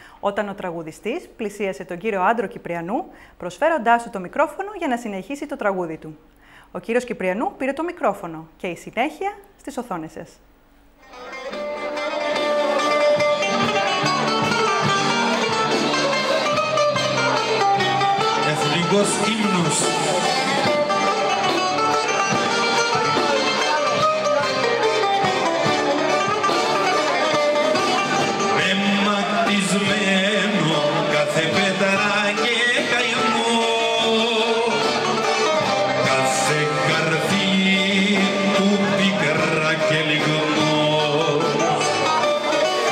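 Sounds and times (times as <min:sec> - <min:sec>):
plucked string instruments: 0:11.0 - 0:42.9.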